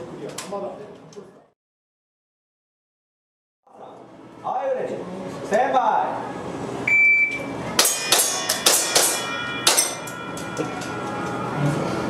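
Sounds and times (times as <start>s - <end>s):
shot timer beep: 6.9s - 7.5s.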